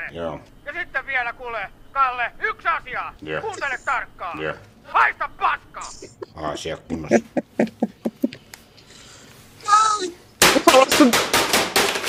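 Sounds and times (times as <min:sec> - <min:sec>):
objects smashed against desk: 0:10.4 - 0:12.0.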